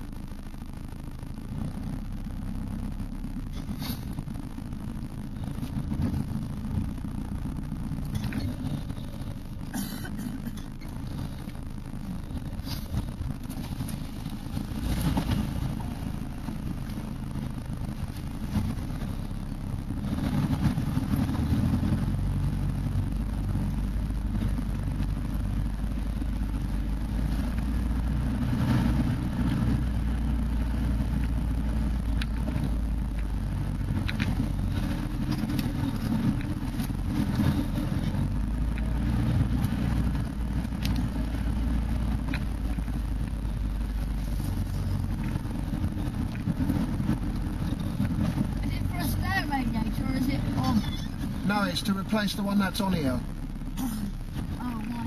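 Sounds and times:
vehicle engine low drone: 0:00.0 - 0:55.0.

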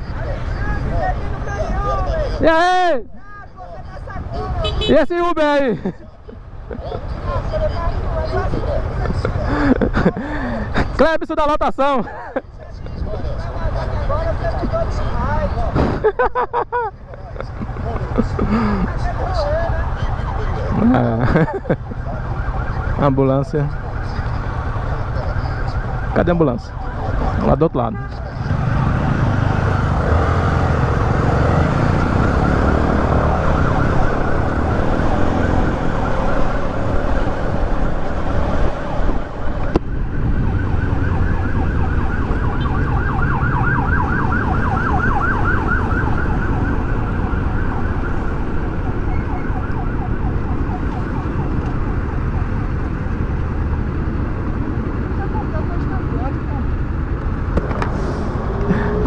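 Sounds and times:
ambulance siren: 0:17.4 - 0:59.0
motorcycle engine: 0:28.3 - 0:55.3, 0:56.7 - 0:59.0
wind rumble: 0:28.8 - 0:59.0.

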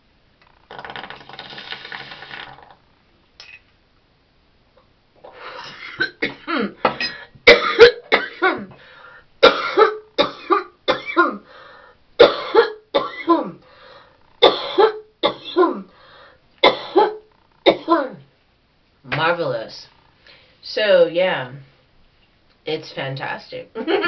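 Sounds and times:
water bong bubbling: 0:00.4 - 0:02.8
harsh repeated coughing: 0:05.5 - 0:08.8, 0:09.4 - 0:11.5, 0:12.2 - 0:13.6, 0:14.4 - 0:15.9, 0:16.6 - 0:18.2.

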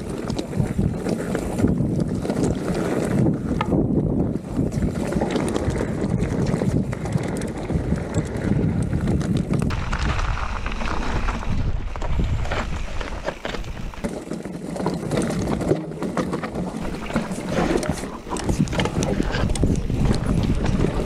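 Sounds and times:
wind buffeting microphone: 0:00.0 - 0:14.1, 0:16.8 - 0:21.0
bike rattling: 0:00.0 - 0:21.0
tyres crunching over gravel: 0:09.6 - 0:15.5, 0:16.8 - 0:21.0.

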